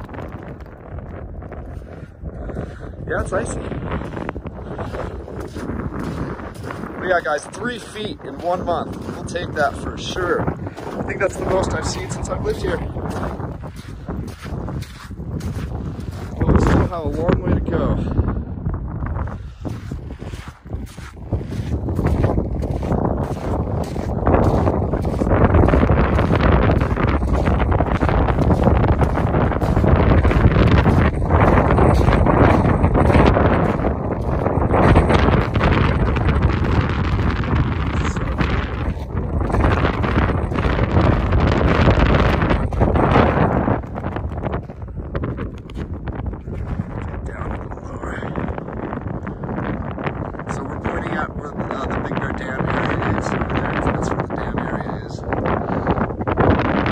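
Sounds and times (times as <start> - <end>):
wind buffeting microphone: 0.0 - 56.9.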